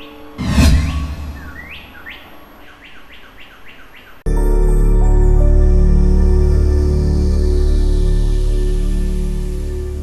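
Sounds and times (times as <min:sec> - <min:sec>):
bird chirps: 0:00.0 - 0:04.2
low rumble: 0:00.4 - 0:02.1.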